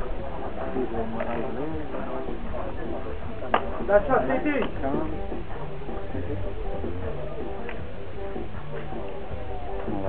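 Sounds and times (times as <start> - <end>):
distant people talking: 0.0 - 10.0
steady low rumble: 0.0 - 10.0.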